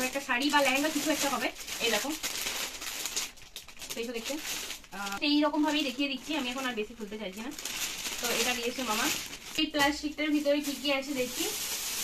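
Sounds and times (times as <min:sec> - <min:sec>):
woman's voice: 0:00.0 - 0:02.2, 0:03.9 - 0:07.6, 0:08.2 - 0:11.6
plastic packaging crinkling: 0:00.0 - 0:12.0.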